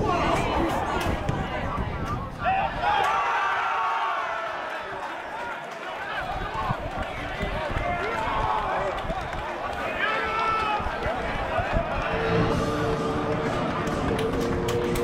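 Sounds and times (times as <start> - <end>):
players and spectators shouting: 0.0 - 14.1.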